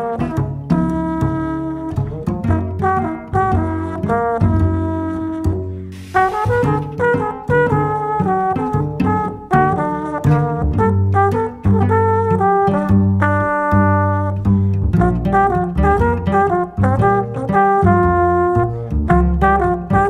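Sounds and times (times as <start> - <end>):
cello: 0.0 - 20.0
double bass low notes: 0.0 - 20.0
trombone: 0.0 - 20.0
burst of hiss: 5.9 - 6.8.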